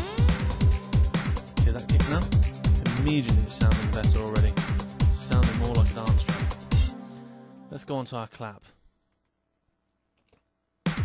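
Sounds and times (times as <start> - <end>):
programmed kick drum: 0.0 - 6.9.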